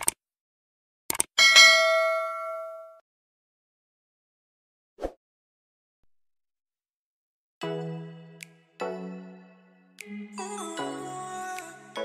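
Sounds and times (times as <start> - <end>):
clicks: 1.1 - 1.3
notification bell ding: 1.4 - 3.0.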